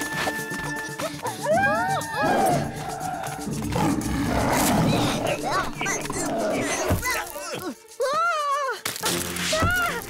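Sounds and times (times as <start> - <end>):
background music: 0.0 - 10.0
cartoon tiger growling: 2.2 - 7.0.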